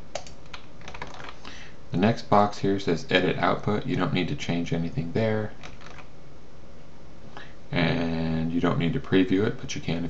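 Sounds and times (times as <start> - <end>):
steady low hiss: 0.0 - 10.0
computer mouse clicking: 0.1 - 1.5, 5.6 - 6.1.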